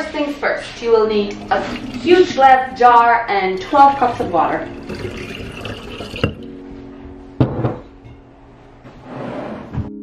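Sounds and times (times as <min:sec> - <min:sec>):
soft background music: 0:00.0 - 0:10.0
water pouring into glass jar: 0:01.2 - 0:06.5.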